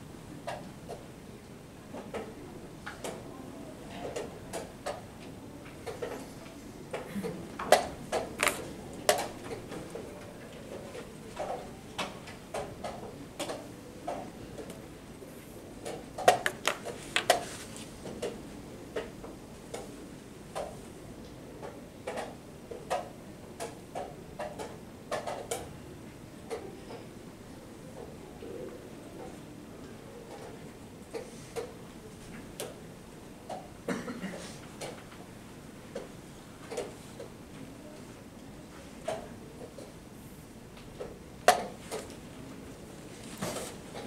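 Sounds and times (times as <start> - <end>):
low room noise: 0.0 - 44.0
chess pieces set down: 8.4 - 8.6, 16.4 - 17.5.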